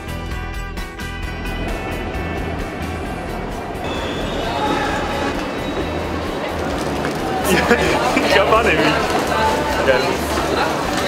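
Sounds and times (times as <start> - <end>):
background music: 0.0 - 11.0
train rumbling in station: 0.0 - 11.0.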